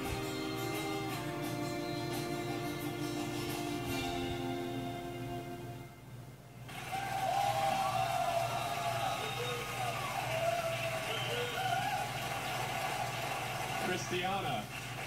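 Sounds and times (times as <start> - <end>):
audience cheering and whooping: 6.7 - 14.1
audience applause: 6.7 - 15.0.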